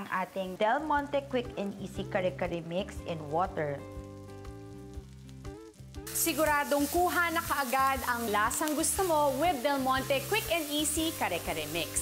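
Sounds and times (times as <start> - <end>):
food sizzling in a wok: 0.0 - 12.0.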